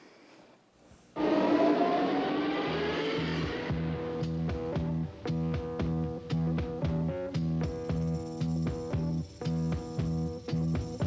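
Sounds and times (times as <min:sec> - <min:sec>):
bassline: 0:01.2 - 0:11.0.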